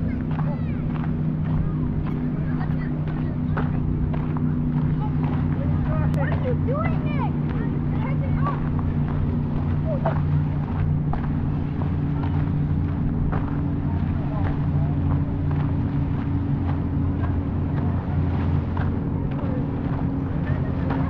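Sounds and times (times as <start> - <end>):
low engine drone: 0.0 - 21.0.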